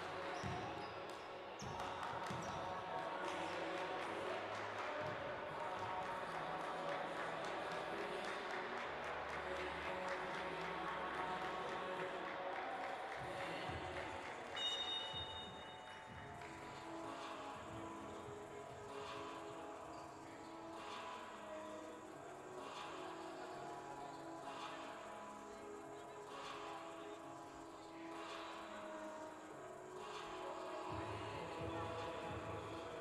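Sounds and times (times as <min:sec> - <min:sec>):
background music with steady beat: 0:00.0 - 0:33.0
voices in sports hall: 0:00.0 - 0:33.0.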